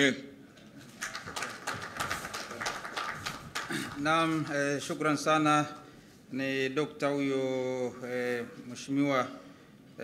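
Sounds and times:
audience applauding: 0.9s - 4.8s.

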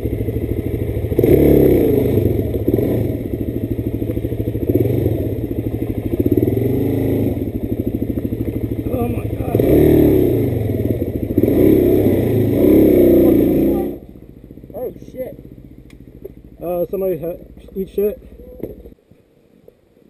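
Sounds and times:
single-cylinder engine chugging: 0.0s - 19.0s.

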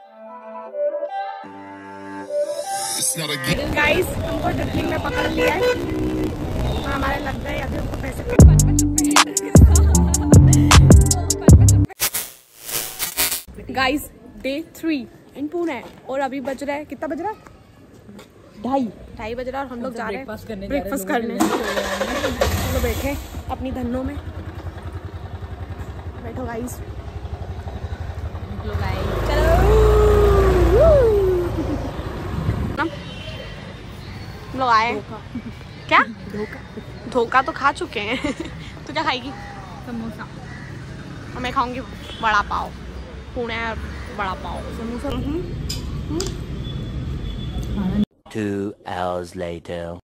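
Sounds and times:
street traffic: 2.0s - 12.0s, 13.0s - 49.9s
drawn-out voice tone: 2.7s - 4.3s
woman speaking: 3.3s - 5.8s, 6.8s - 9.7s, 18.6s - 24.2s, 34.6s - 38.2s, 43.4s - 45.5s
vehicle horn: 4.8s - 7.2s
vehicle engine throbbing: 21.4s - 32.8s.

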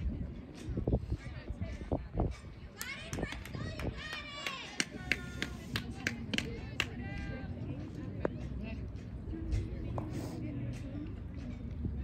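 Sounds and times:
people calling out and cheering: 2.7s - 8.0s
sharp handclaps: 2.8s - 7.0s.

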